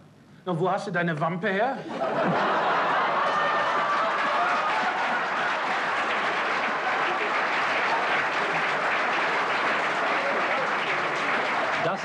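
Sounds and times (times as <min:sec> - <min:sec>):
audience laughing: 0:01.8 - 0:12.0
audience applauding: 0:02.0 - 0:12.0.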